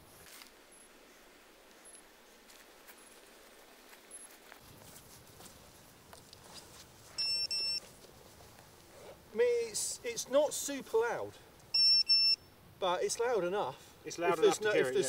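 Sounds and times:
loud beeps: 0:07.2 - 0:07.8, 0:11.7 - 0:12.4
short high beeps: 0:07.2 - 0:07.8, 0:11.7 - 0:12.5.

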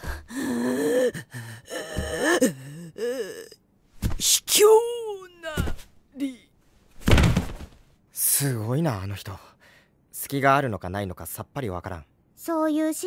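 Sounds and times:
strained cries and grunts: 0:00.0 - 0:03.6.

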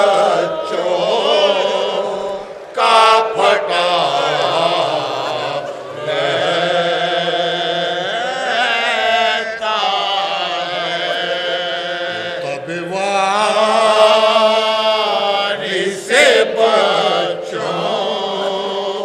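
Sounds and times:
group of men singing: 0:00.0 - 0:19.0
lead reciter singing elegy: 0:00.0 - 0:19.0.

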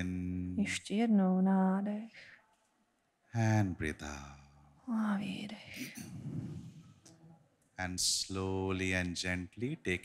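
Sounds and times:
woman whispering into microphone: 0:04.9 - 0:07.0.

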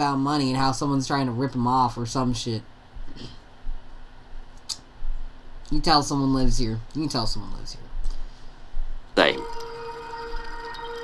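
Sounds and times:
background music held note: 0:09.2 - 0:11.0.

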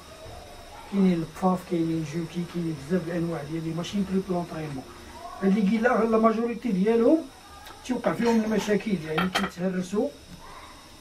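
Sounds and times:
man talking: 0:07.8 - 0:10.2.

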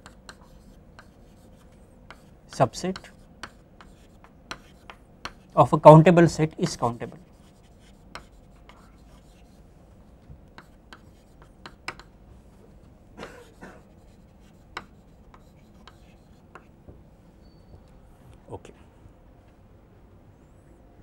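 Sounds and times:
chalk tapping and scratching on blackboard: 0:00.0 - 0:05.6, 0:06.6 - 0:12.2, 0:13.5 - 0:16.7.

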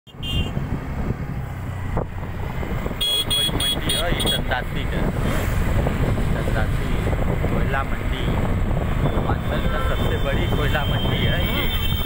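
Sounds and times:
road vehicle rumbling: 0:00.1 - 0:12.0.

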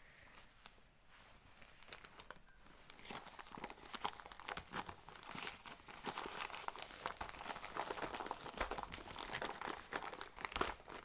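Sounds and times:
newspaper crinkling and rustling: 0:00.6 - 0:11.0.

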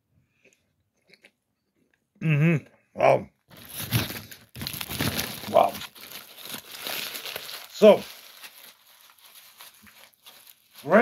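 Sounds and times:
paper wrapper crinkling: 0:03.5 - 0:11.0.

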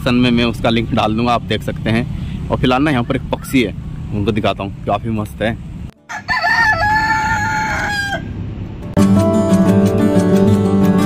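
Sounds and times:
rooster crowing: 0:06.0 - 0:08.4.

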